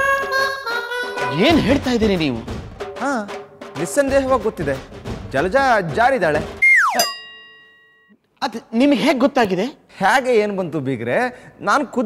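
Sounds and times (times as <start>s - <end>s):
falling whistle: 6.6s - 7.1s
bell-like ding: 6.9s - 8.2s.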